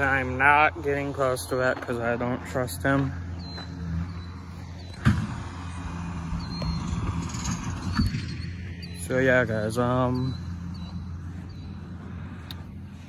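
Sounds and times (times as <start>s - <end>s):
distant loader engine running: 0.0s - 13.0s.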